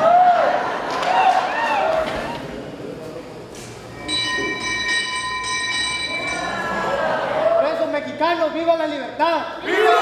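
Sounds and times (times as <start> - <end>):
church bell ringing: 4.0 - 6.6.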